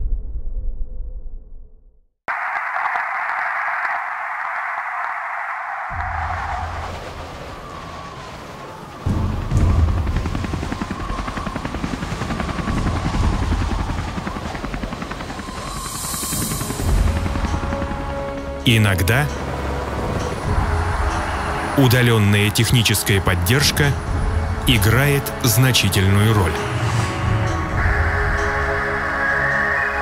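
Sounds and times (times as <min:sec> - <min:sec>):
helicopter rotor chopping: 0:05.8 - 0:29.1
soundtrack music: 0:14.7 - 0:30.0.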